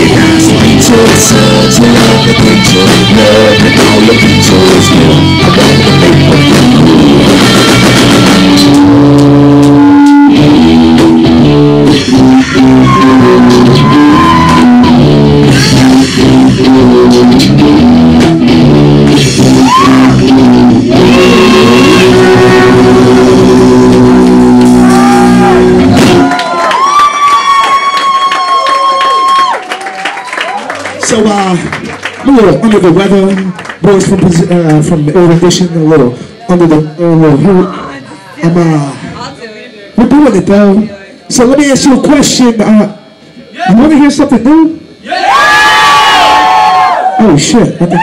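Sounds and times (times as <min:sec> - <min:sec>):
man singing: 0:00.0 - 0:07.6, 0:12.1 - 0:14.6, 0:15.7 - 0:17.9, 0:19.5 - 0:24.7
drums: 0:00.0 - 0:33.1
electric guitar: 0:00.0 - 0:40.9.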